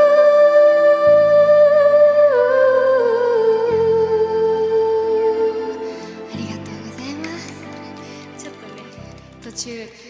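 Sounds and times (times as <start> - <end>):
karaoke backing chords: 0.0 - 9.8.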